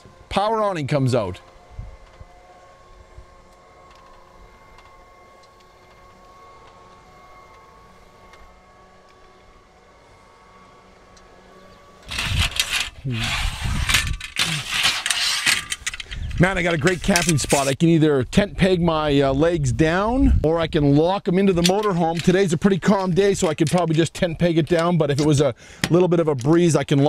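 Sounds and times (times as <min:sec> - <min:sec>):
electric motor humming: 0:00.0 - 0:17.8
rattling and scraping: 0:12.0 - 0:17.8, 0:21.4 - 0:26.0.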